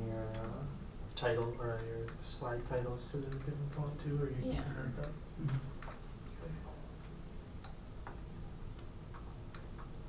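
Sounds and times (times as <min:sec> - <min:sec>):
low room hum: 0:00.0 - 0:10.0
laptop keyboard typing: 0:00.2 - 0:10.0.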